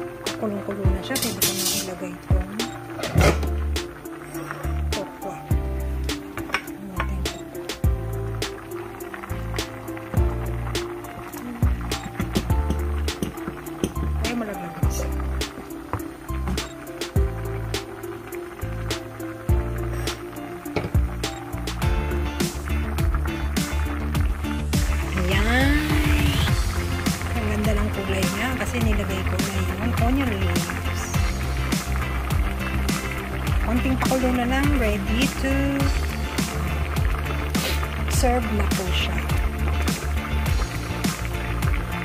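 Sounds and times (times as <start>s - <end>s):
background music with beat and bass: 2.4s - 42.0s.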